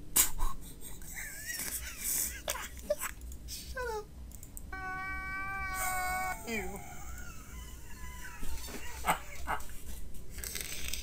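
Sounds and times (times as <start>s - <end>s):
man laughing: 0.6s - 3.1s, 4.8s - 9.8s
man crying: 4.8s - 9.7s.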